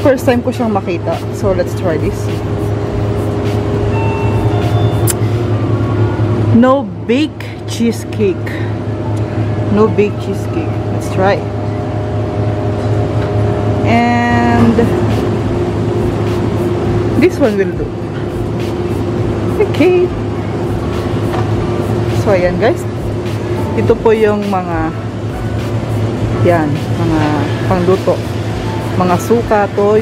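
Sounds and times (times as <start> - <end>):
refrigerated display case humming: 0.0 - 30.0.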